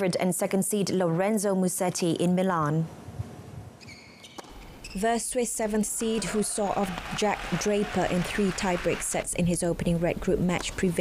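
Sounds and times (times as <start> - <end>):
shoe squeaks on court: 3.8 - 5.2.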